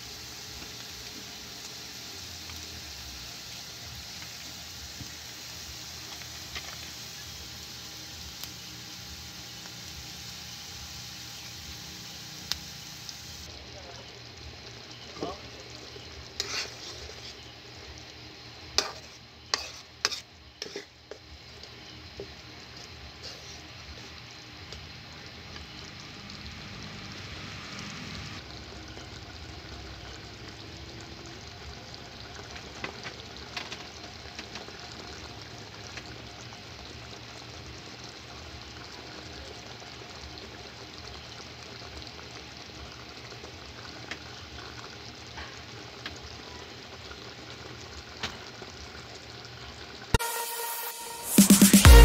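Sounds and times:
sauce bubbling and sizzling: 0:00.0 - 0:52.0
metal spatula scraping pan: 0:16.4 - 0:17.4, 0:18.8 - 0:21.2, 0:23.2 - 0:24.1.

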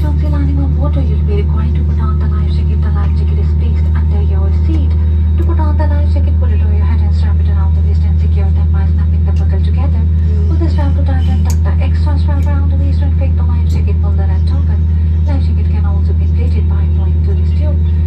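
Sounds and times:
airliner cabin drone: 0:00.0 - 0:18.0
person talking: 0:00.0 - 0:18.0.

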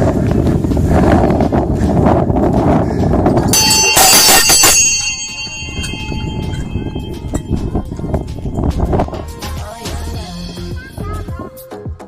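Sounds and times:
small metal bell clanging: 0:03.5 - 0:09.2.

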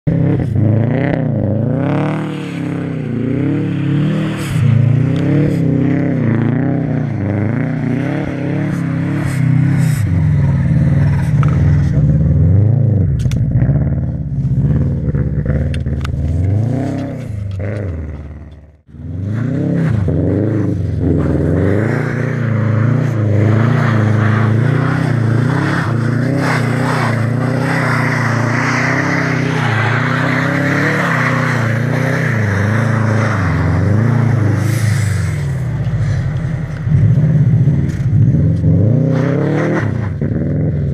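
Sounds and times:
car engine revving: 0:00.0 - 0:40.9.

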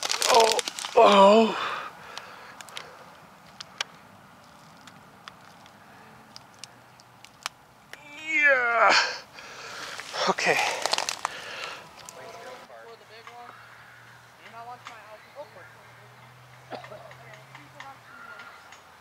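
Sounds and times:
rustling: 0:00.0 - 0:01.2, 0:02.2 - 0:07.5, 0:09.4 - 0:12.7.

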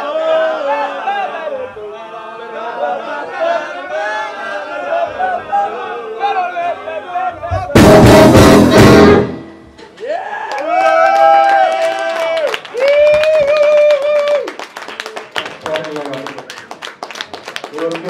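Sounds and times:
jazz-rock band hit: 0:07.5 - 0:10.0.

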